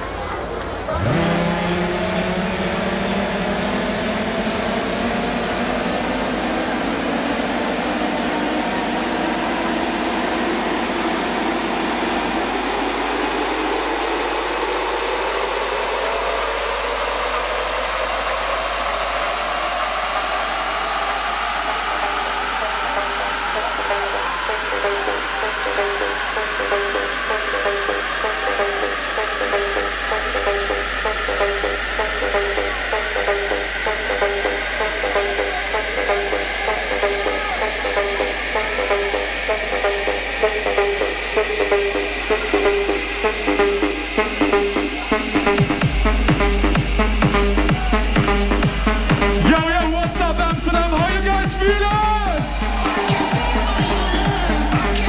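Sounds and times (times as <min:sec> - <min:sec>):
bass: 0:00.0 - 0:55.0
electronic dance music: 0:00.1 - 0:55.0
synth riser: 0:00.4 - 0:55.0
fast repeating rhythm: 0:18.5 - 0:55.0.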